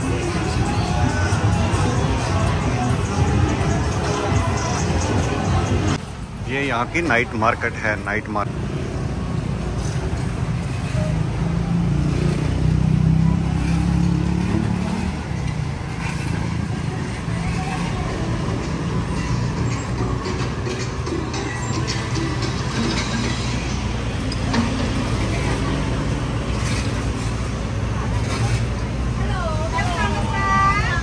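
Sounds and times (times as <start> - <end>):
street traffic drone: 0.0 - 31.0.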